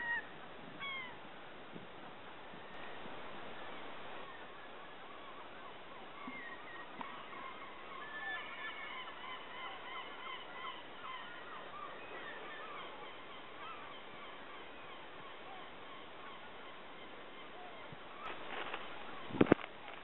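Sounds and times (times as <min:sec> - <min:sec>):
steady background hiss: 0:00.0 - 0:20.0
seabirds honking calls: 0:04.2 - 0:19.6.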